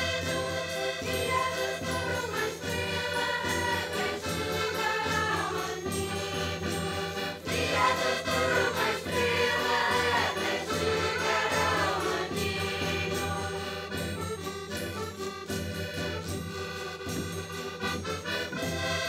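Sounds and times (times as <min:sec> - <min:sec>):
children's choir singing: 0:00.0 - 0:14.3
accordions playing: 0:00.0 - 0:19.0.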